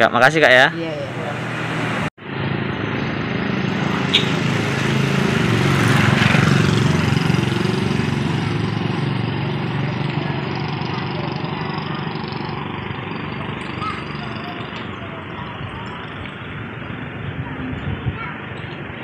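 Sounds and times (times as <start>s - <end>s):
small motorcycle engine running: 3.0s - 17.2s.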